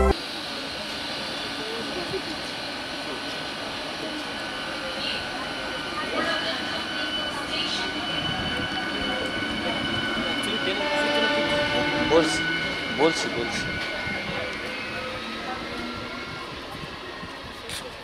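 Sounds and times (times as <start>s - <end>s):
train wheels rumbling on rails: 0.1s - 18.0s.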